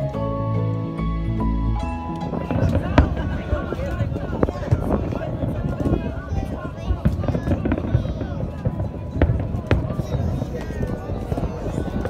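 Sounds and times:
crowd chatter: 0.0 - 12.0
distant fireworks bangs and pops: 2.1 - 12.0.

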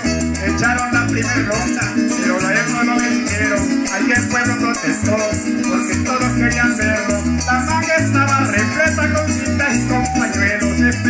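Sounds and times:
folk band with harp and maracas: 0.0 - 11.0.

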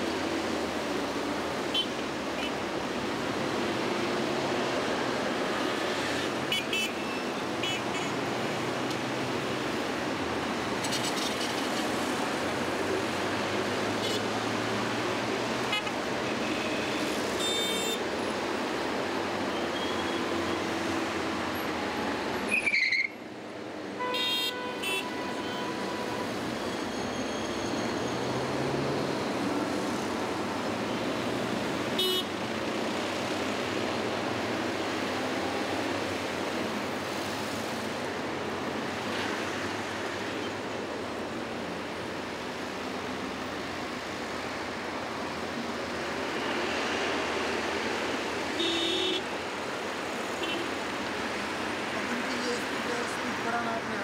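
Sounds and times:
busy road traffic: 0.0 - 54.0.

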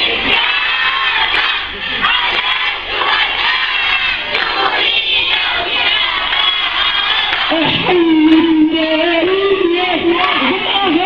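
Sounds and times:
crowd of women and children shouting: 0.0 - 11.0.

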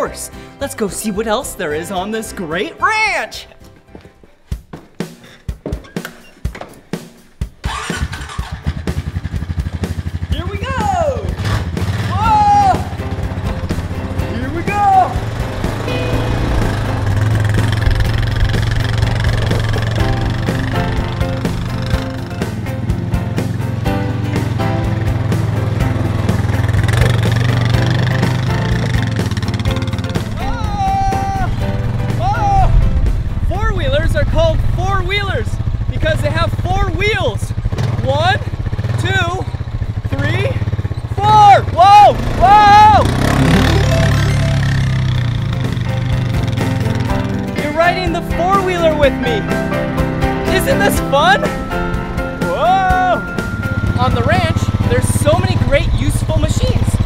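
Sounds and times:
background music: 0.0 - 57.0
atv engine running: 5.7 - 57.0.

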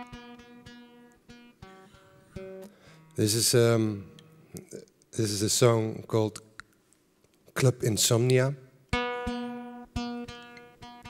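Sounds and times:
guitar chords strummed: 0.0 - 4.5, 8.9 - 11.0.

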